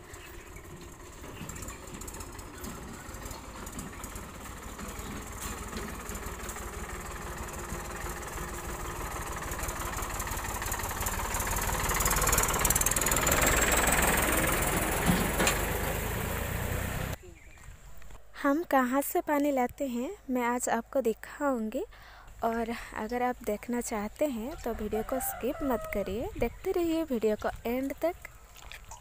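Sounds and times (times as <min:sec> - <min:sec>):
motorcycle engine running: 0:00.0 - 0:17.2
tractor diesel engine: 0:00.0 - 0:17.2, 0:21.8 - 0:28.8.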